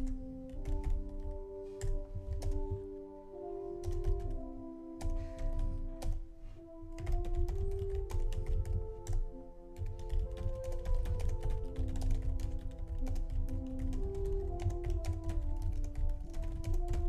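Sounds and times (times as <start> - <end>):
computer keyboard typing: 0.0 - 2.8, 3.8 - 4.4, 5.0 - 6.2, 7.0 - 17.0
soft background music: 0.0 - 17.0.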